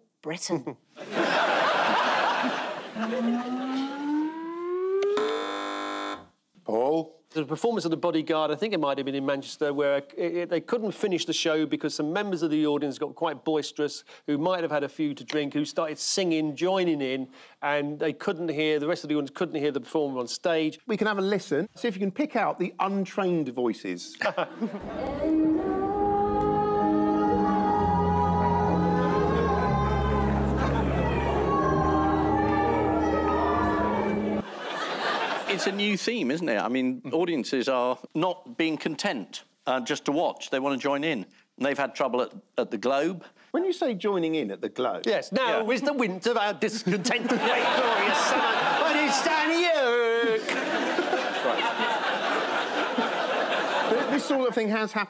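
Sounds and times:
tone gliding upward: 3.0 - 5.4
loud steady overtone-rich tone: 3.0 - 6.4
audience singing along: 24.8 - 34.9.

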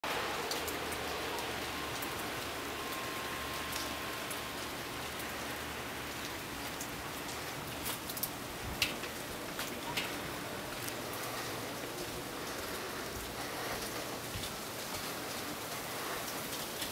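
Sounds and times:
dripping water ticks: 0.0 - 16.9
wet snow and rain falling: 0.0 - 16.9.

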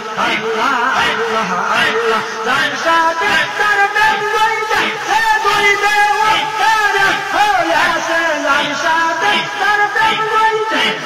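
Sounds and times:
men singing a devotional chant: 0.0 - 11.0.

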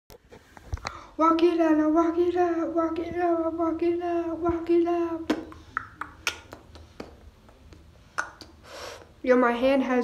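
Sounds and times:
finger snaps: 5.3 - 8.6.

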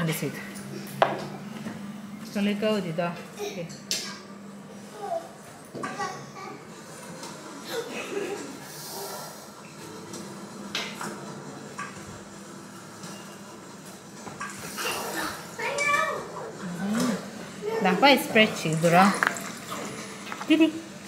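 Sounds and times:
people talking: 2.3 - 3.8, 15.2 - 19.3, 20.5 - 20.8.

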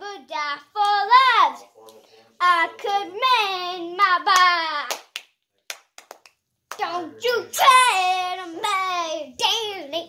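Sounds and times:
child singing: 0.0 - 1.7, 2.4 - 5.0, 6.8 - 10.0.

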